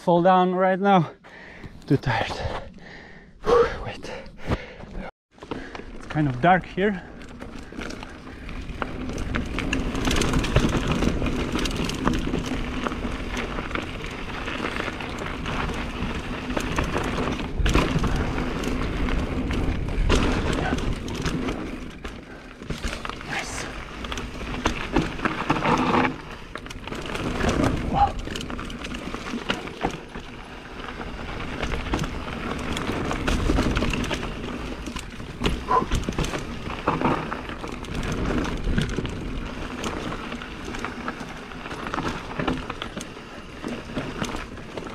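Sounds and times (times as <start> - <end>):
bike knocking and rattling: 4.5 - 44.9
bike tyres rumbling over dirt: 4.6 - 44.9.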